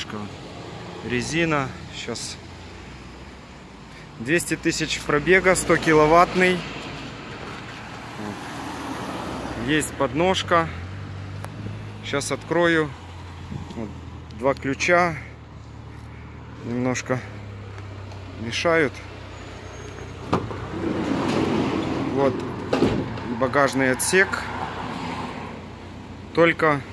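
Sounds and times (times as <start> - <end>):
street traffic hum: 0.0 - 26.9.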